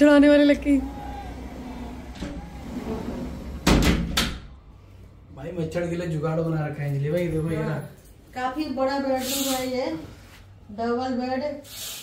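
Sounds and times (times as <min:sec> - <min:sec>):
sliding window pushed shut: 0:00.8 - 0:04.4
window frame knocking: 0:03.6 - 0:04.4.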